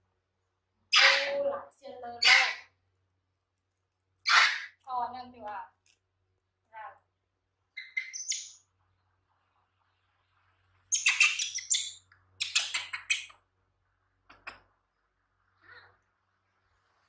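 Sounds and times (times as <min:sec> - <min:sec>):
baby monkey squeaking: 0:00.9 - 0:01.4, 0:02.2 - 0:02.7, 0:04.2 - 0:04.8, 0:07.8 - 0:08.6, 0:10.9 - 0:13.3.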